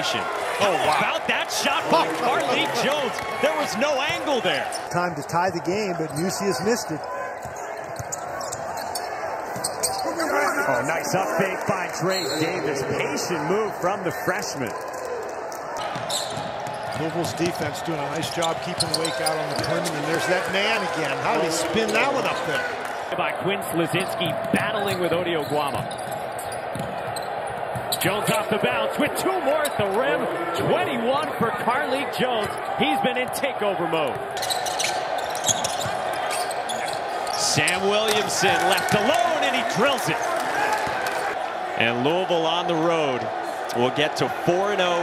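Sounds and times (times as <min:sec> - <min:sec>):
shoe squeaks and clicks: 0:07.3 - 0:10.3, 0:12.1 - 0:12.6, 0:15.8 - 0:17.1, 0:18.2 - 0:20.0, 0:24.9 - 0:28.1, 0:34.2 - 0:38.2.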